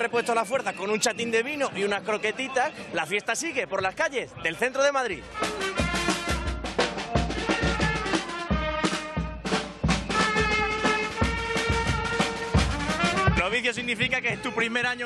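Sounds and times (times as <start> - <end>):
drum beat: 5.2 - 14.6
brass band playing: 5.2 - 14.8.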